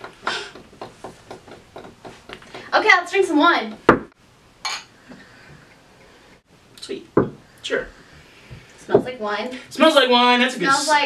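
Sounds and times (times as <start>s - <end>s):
glass clink: 4.6s - 4.9s.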